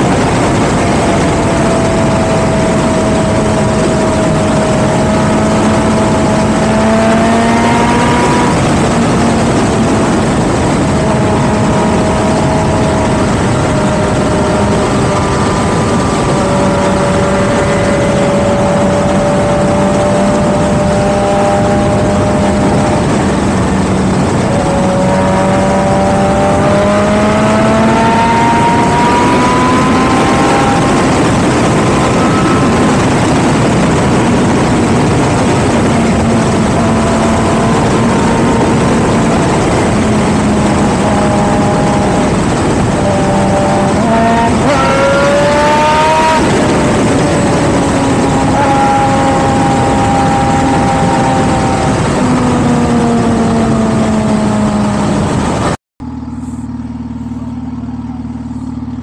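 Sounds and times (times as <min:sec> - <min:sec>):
heavy wind rush: 0:00.0 - 0:55.8
motorcycle engine running: 0:00.0 - 0:59.0.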